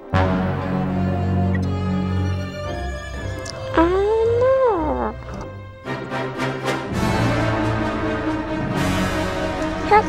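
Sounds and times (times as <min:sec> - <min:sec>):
orchestral background music: 0:00.0 - 0:10.0
wordless cartoon voice: 0:03.7 - 0:05.2.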